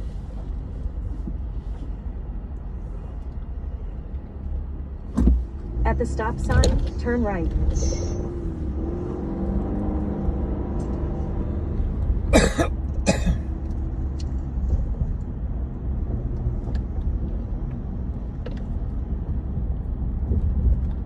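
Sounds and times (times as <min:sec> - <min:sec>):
car road and engine rumble: 0:00.0 - 0:21.0
person coughing loudly: 0:12.3 - 0:13.5.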